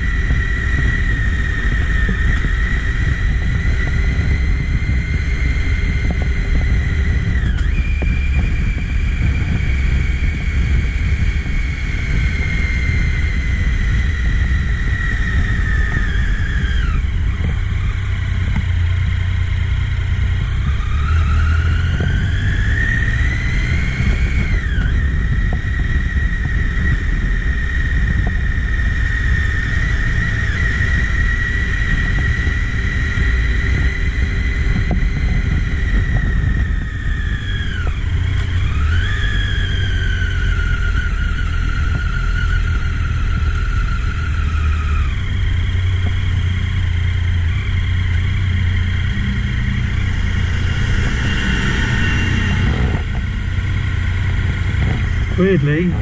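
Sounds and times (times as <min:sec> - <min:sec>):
motorcycle engine running: 0:00.0 - 0:56.0.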